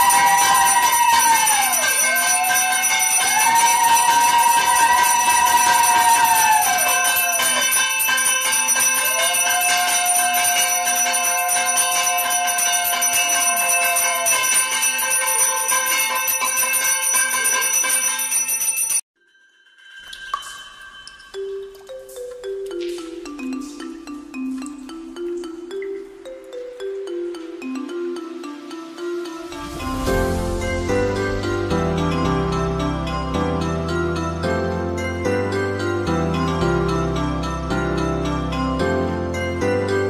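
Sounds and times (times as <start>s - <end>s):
hand bell ringing: 0.0s - 27.9s.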